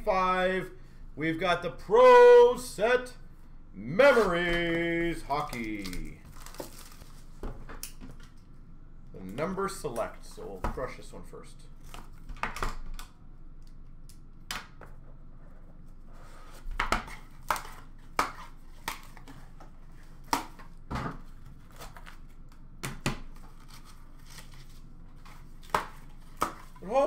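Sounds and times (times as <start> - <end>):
packaging rustling: 5.4 - 7.4.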